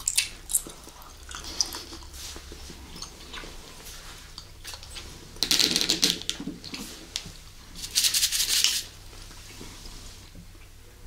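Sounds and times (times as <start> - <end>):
plastic bottles clicking and rattling: 5.4 - 6.6.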